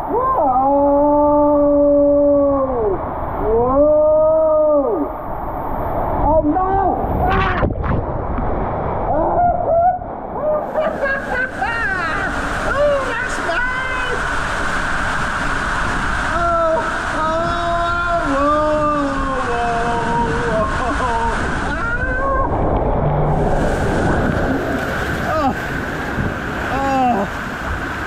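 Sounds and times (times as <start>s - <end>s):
water rushing down a slide: 7.0s - 28.0s
person shouting: 25.2s - 25.6s, 26.7s - 27.3s.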